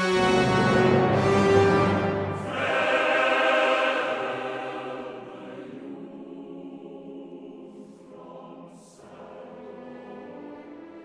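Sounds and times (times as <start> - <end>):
orchestra playing: 0.0 - 3.0
chorus singing: 0.0 - 11.0.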